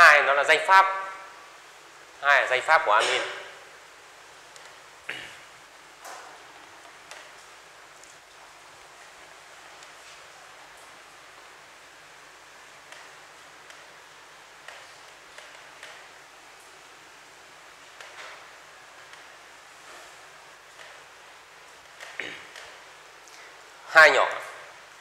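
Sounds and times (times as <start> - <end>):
steady background hiss: 0.0 - 25.0.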